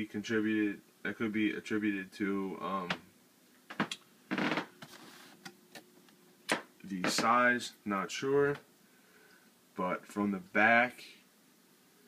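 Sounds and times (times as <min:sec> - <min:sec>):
person speaking: 0:00.0 - 0:03.1, 0:06.5 - 0:08.7.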